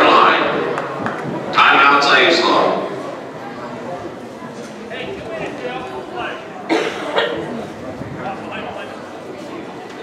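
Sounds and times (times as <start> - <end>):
low background talking: 0.0 - 10.0
loud cough: 6.7 - 7.6.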